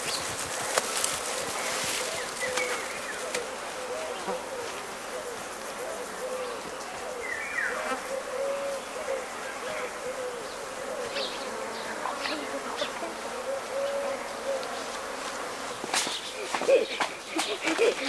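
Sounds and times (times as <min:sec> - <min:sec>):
insect buzzing: 0:00.0 - 0:18.0.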